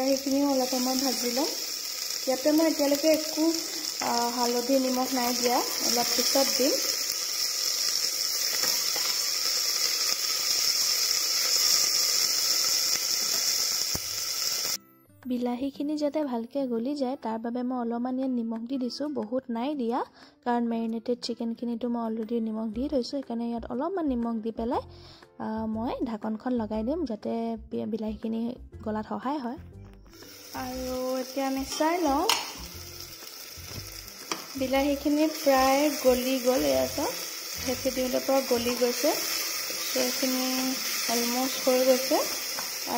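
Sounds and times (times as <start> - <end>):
vegetables sizzling in hot oil: 0.0 - 14.8, 30.1 - 42.9.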